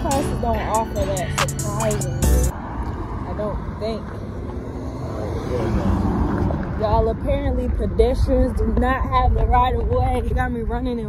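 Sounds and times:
cars passing: 0.0s - 11.0s.

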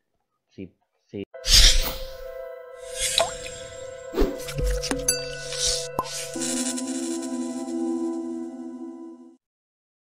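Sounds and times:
electronic jingle with synth tones: 1.4s - 9.4s.

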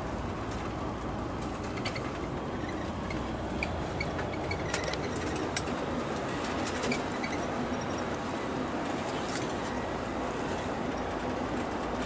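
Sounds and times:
road and engine noise: 0.0s - 12.0s
short high squeaks: 1.8s - 5.4s.

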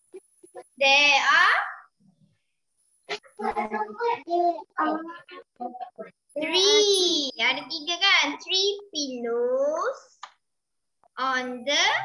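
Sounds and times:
children speaking over video call: 0.5s - 2.0s, 3.1s - 12.0s.

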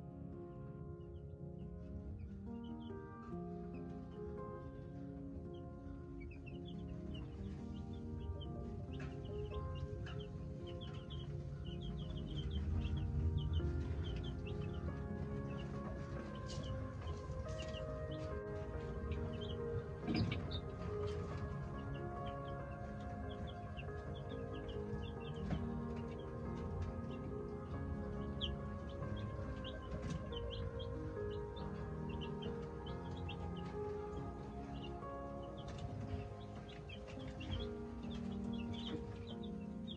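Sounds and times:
soft background music: 0.0s - 39.9s
chicks peeping: 1.0s - 39.9s.

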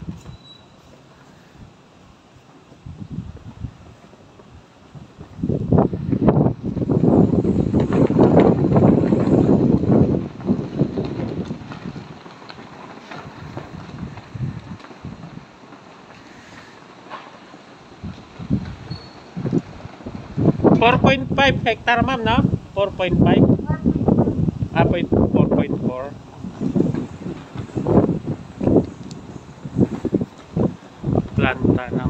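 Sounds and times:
wind buffeting microphone: 0.0s - 32.0s.

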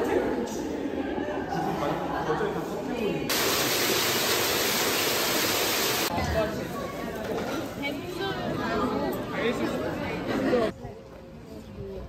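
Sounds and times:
loud steady rushing hiss: 3.3s - 6.1s.

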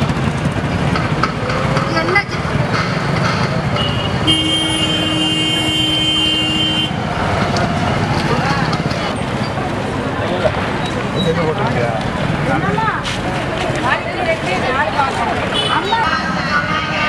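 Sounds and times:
crowd chatter: 0.0s - 17.0s
passing traffic: 0.0s - 17.0s
vehicle horn: 3.7s - 7.0s, 15.5s - 17.0s.

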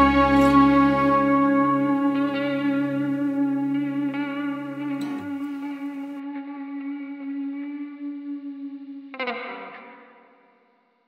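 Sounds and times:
guitar chord strummed: 0.0s - 6.2s
guitar with chorus effect: 0.0s - 10.7s.

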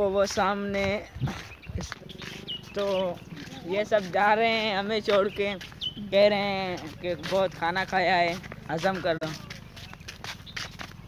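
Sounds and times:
man speaking: 0.0s - 9.7s
faint low thumps: 0.2s - 8.7s.

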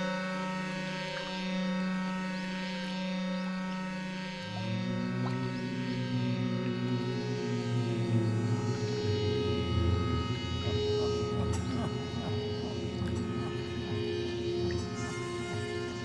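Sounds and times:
low drone: 0.0s - 16.0s.

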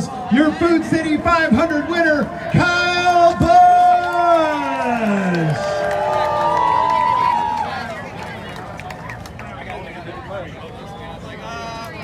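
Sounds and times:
man calling over loudspeaker: 0.0s - 5.6s
crowd cheering and whooping: 2.2s - 8.2s.

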